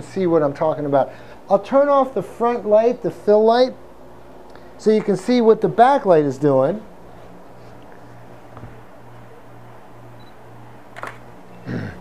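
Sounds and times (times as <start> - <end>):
steady low hum: 0.0 - 12.0
camera shutter click: 11.0 - 11.2.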